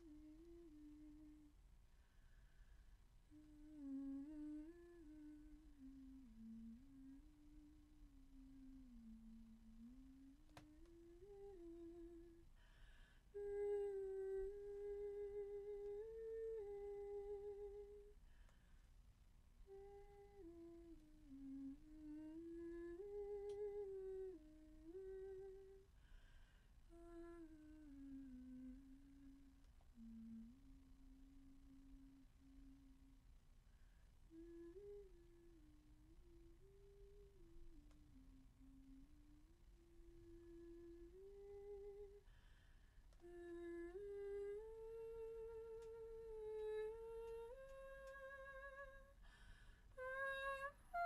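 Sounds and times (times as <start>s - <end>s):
woman humming slow melody: 0.0s - 1.6s, 3.3s - 18.2s, 19.6s - 26.2s, 26.9s - 33.2s, 34.3s - 51.0s.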